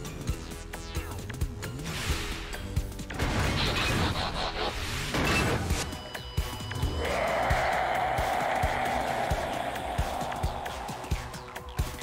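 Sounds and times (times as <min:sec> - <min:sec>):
background music with low beat: 0:00.0 - 0:03.6, 0:05.9 - 0:12.0.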